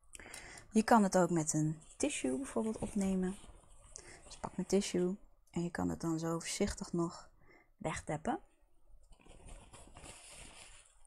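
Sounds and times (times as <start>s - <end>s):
paper tissue rustling: 0.8s - 5.2s, 9.0s - 11.0s.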